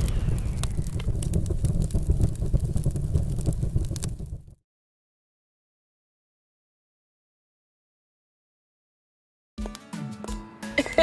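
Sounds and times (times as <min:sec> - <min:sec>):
deep rumble: 0:00.0 - 0:04.6
fiery crackles and clicks: 0:00.0 - 0:04.6.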